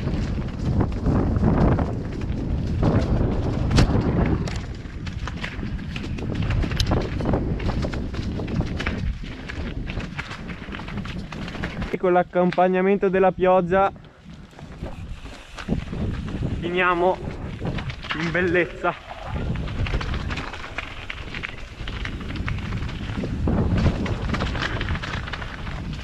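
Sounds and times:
bike rattling: 0:00.0 - 0:26.0
bike tyres crunching over stones: 0:00.0 - 0:26.0
wheels knocking on rocks: 0:00.0 - 0:26.0.

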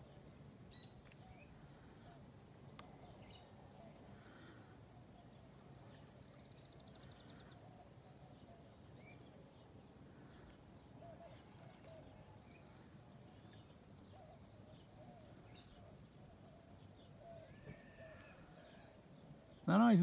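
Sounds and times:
faint bird chirps: 0:00.0 - 0:20.0.

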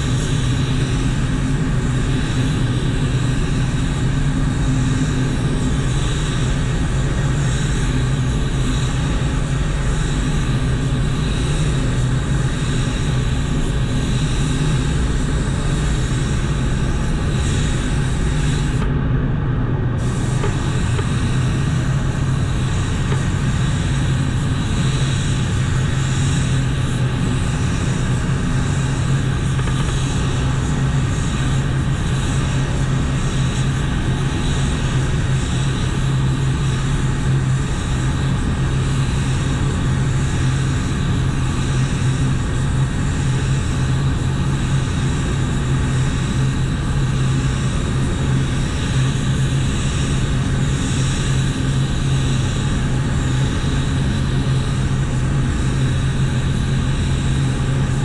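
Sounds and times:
ventilation humming: 0:00.0 - 0:58.0
spray gun hissing: 0:01.8 - 0:18.9, 0:20.0 - 0:37.2.

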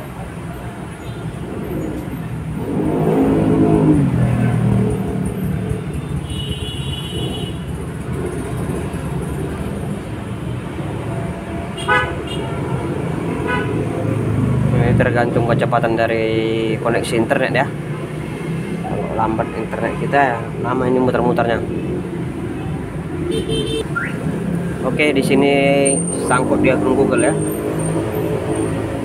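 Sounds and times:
vehicle passing: 0:00.0 - 0:06.2, 0:07.2 - 0:29.0
road traffic noise: 0:00.0 - 0:29.0.

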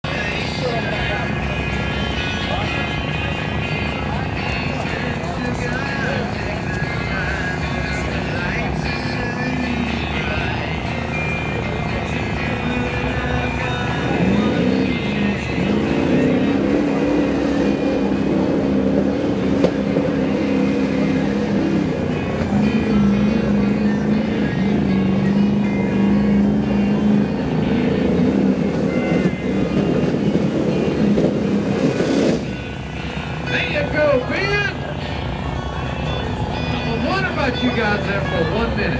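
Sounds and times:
pickup truck engine revving: 0:00.0 - 0:38.9.

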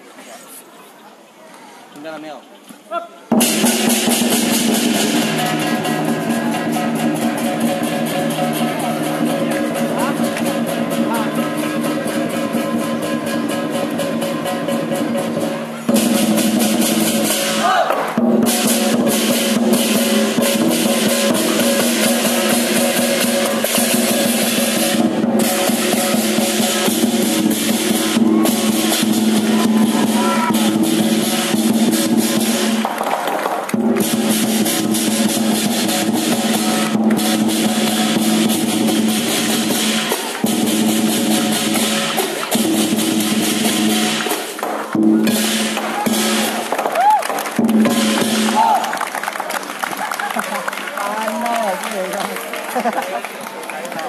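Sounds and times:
big drum rolls: 0:03.3 - 0:49.4
crashing cymbals: 0:03.4 - 0:32.8, 0:34.0 - 0:46.7.

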